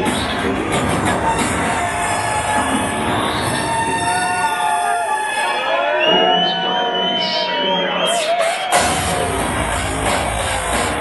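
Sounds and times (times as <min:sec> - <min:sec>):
kick and bass: 0:00.0 - 0:04.3, 0:08.7 - 0:11.0
loud hardcore techno: 0:00.0 - 0:11.0.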